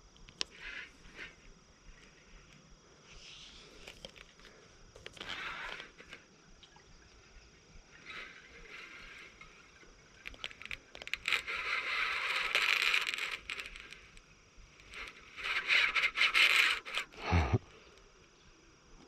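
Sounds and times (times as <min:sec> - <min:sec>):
fishing reel buzzing: 0:00.3 - 0:02.6, 0:03.2 - 0:06.3, 0:07.9 - 0:17.4.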